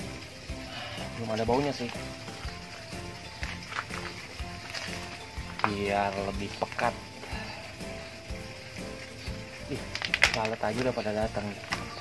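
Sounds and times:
background music held notes: 0.0s - 12.0s.

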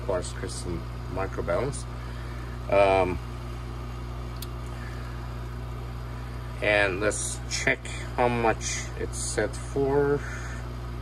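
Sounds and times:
vacuum pump humming: 0.0s - 11.0s.

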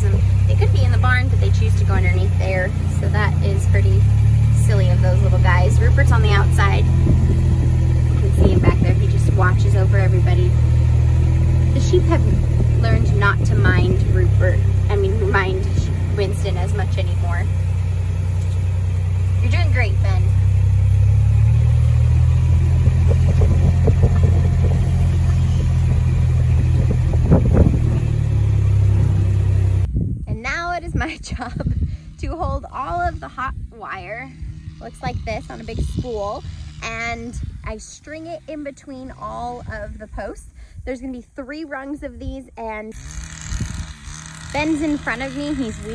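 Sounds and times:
vehicle engine droning: 0.0s - 29.9s, 31.2s - 40.3s, 42.9s - 45.9s
indistinct voices: 11.6s - 17.6s.

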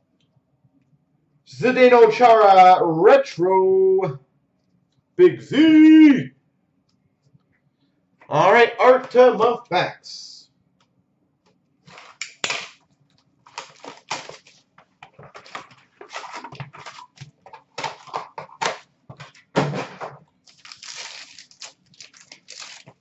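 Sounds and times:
wrapper crinkling and rustling: 11.9s - 19.5s, 20.1s - 23.0s
card pack wrapper tearing: 13.5s - 18.8s, 20.4s - 23.0s.

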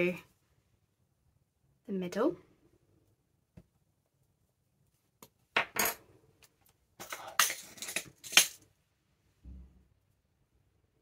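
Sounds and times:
metal brads rattling in plastic pot: 7.0s - 8.6s.

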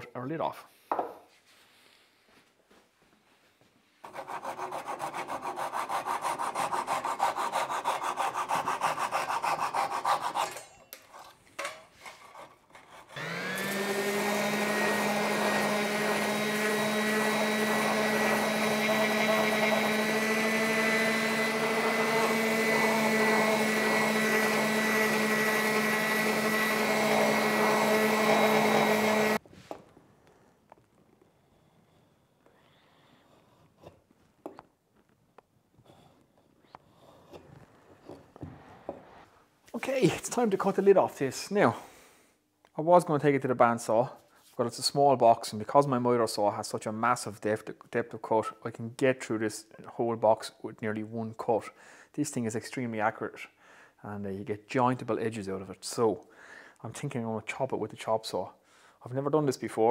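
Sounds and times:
hand saw cutting wood: 4.0s - 11.4s, 12.0s - 29.4s
electric sander running: 13.2s - 29.4s.

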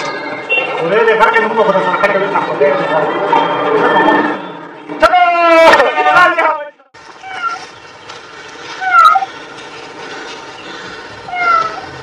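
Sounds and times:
cat meowing loudly: 7.2s - 7.6s, 8.8s - 9.3s, 11.3s - 12.0s
high-pitched animal cries: 7.2s - 7.6s, 8.8s - 9.3s, 11.3s - 12.0s.

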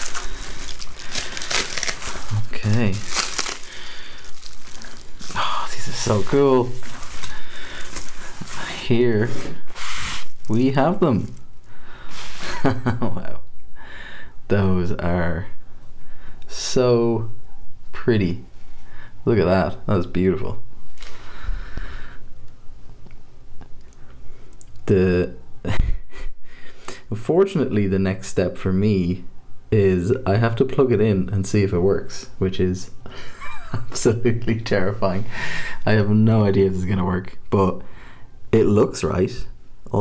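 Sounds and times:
soft handling rustle: 0.0s - 11.7s
bubble wrap crinkling: 0.0s - 12.6s.

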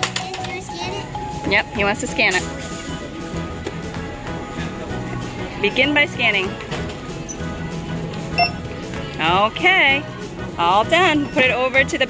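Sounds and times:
background music: 0.0s - 12.0s
barcode scanner beep: 8.4s - 8.6s.

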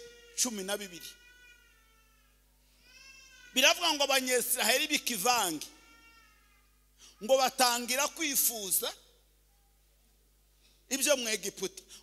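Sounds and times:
man preaching through microphone: 0.0s - 1.3s, 3.5s - 5.9s, 7.0s - 9.2s, 10.9s - 12.0s.

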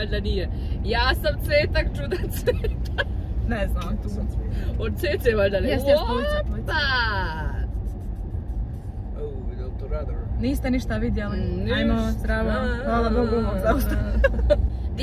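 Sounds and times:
car driving heard from inside: 0.0s - 15.0s
voices: 3.5s - 7.6s.

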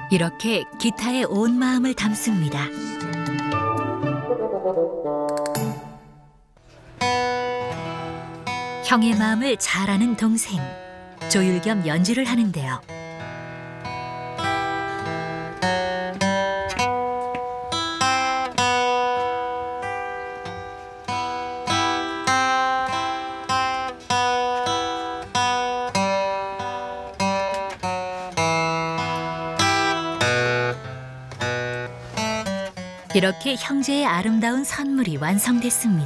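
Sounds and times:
acoustic guitar playing: 0.0s - 36.0s.

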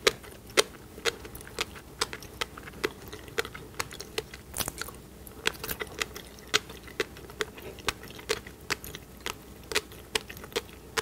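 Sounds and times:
chewing popping fish roe: 0.0s - 11.0s.

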